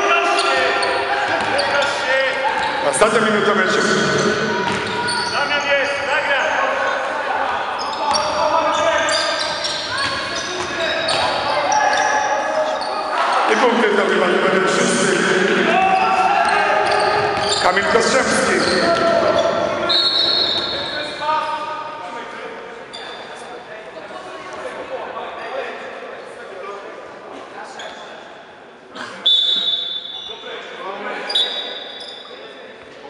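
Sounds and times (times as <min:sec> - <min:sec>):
people shouting in a hall: 0:00.0 - 0:22.0
sneakers squeaking on wooden court: 0:00.2 - 0:02.9, 0:04.1 - 0:06.0, 0:07.8 - 0:13.1, 0:15.5 - 0:21.1, 0:31.3 - 0:32.4
basketball bouncing: 0:04.6 - 0:05.1.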